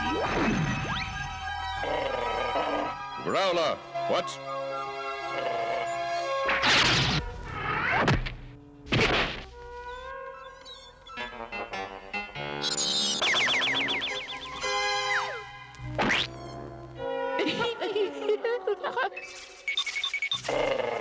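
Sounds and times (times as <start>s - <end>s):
cartoon soundtrack music: 0.0s - 19.6s.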